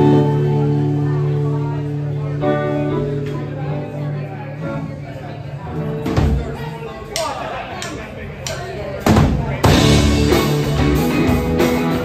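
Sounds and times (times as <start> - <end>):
electric guitar: 0.0 - 6.4, 9.6 - 12.0
bass guitar notes: 0.0 - 6.9, 9.3 - 12.0
full band hits: 5.7 - 12.0.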